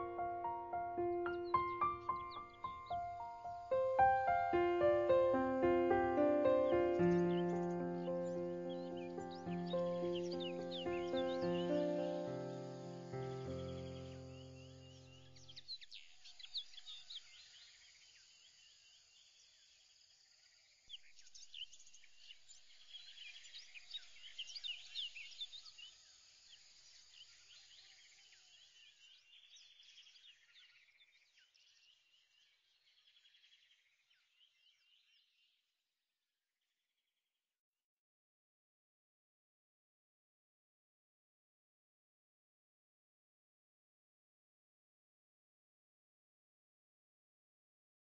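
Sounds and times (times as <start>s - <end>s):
held music chord: 0.0s - 14.4s
birds chirping: 0.0s - 17.4s.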